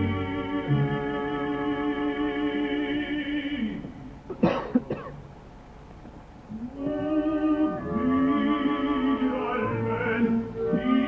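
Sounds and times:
person coughing: 4.3 - 5.2.

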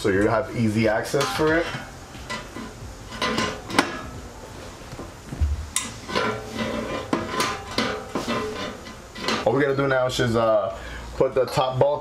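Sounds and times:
metal muffler clinks and knocks: 1.0 - 4.2, 5.8 - 9.6.

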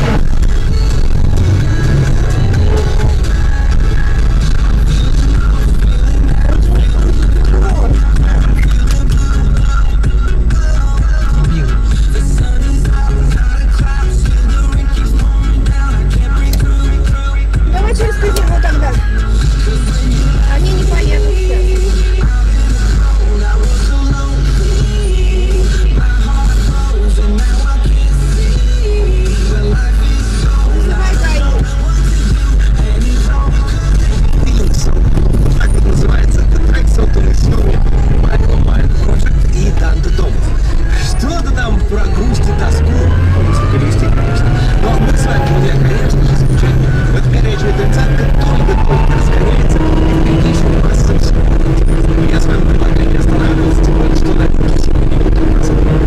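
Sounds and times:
loud background music: 0.0 - 56.0.

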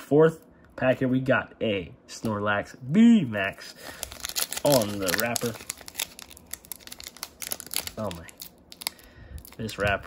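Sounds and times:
foil wrapper crinkling and tearing: 3.6 - 10.0.

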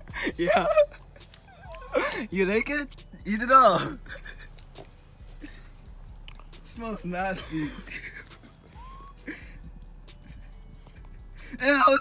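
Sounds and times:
wet chewing and mouth clicks: 0.9 - 1.9, 4.3 - 6.7, 8.2 - 11.3.

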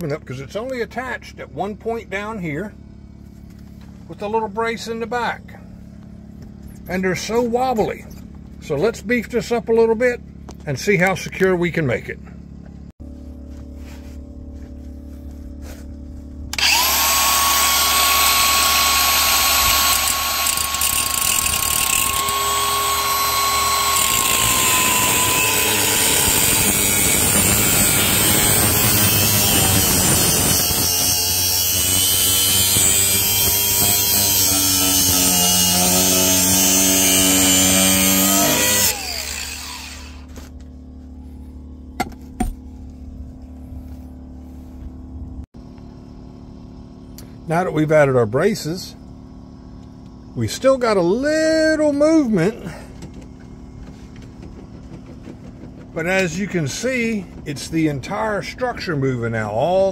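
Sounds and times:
angle grinder cutting steel: 16.5 - 40.5.

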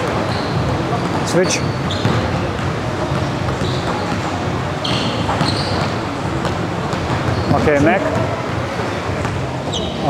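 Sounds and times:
basketball bouncing on court: 0.0 - 10.0
short high squeaks: 0.2 - 2.2, 3.6 - 4.1, 4.8 - 6.1, 9.7 - 10.0.

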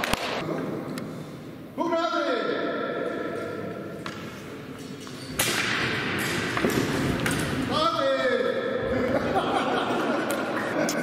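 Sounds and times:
voices shouting and laughing: 8.8 - 11.0.

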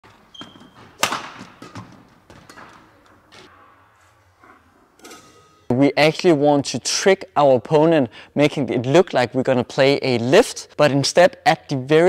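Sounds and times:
footfalls on indoor court: 0.0 - 3.7
racket striking shuttlecock: 0.4 - 3.0.

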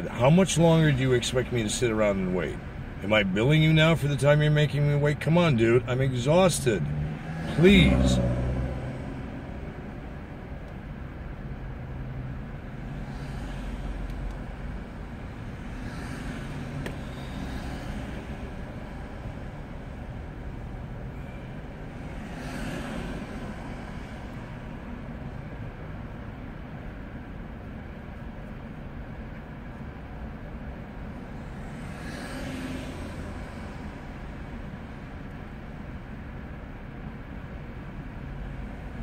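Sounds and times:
car hum in traffic: 0.0 - 39.0
cars passing by: 0.0 - 39.0.

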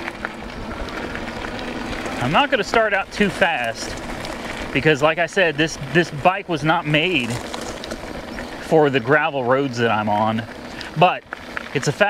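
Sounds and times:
tyres rolling on gravel: 0.0 - 12.0.

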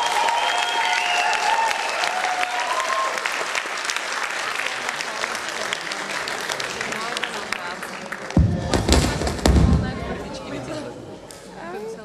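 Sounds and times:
drums and bass hits: 8.4 - 10.4.

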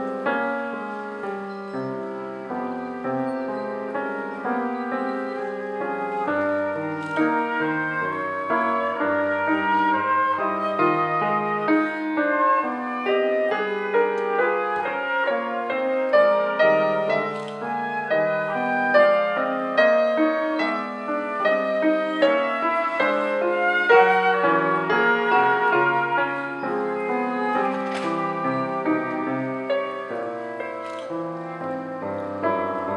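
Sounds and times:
flute playing classical solo: 0.0 - 32.9
piano accompaniment: 0.0 - 32.9.

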